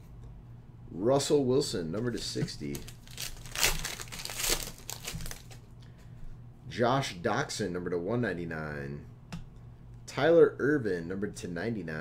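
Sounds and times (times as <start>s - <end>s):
foil wrapper crinkling: 2.0s - 5.6s.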